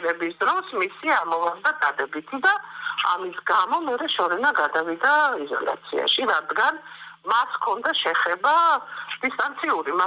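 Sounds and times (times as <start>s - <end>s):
faint steady hum: 0.0s - 10.0s
woman speaking over telephone: 0.0s - 10.0s.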